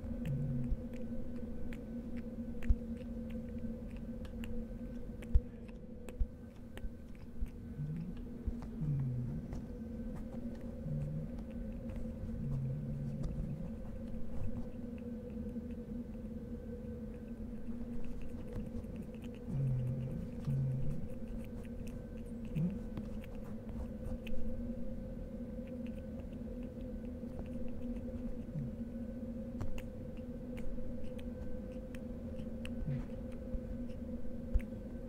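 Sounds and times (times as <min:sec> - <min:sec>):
steady low hum: 0:00.0 - 0:35.0.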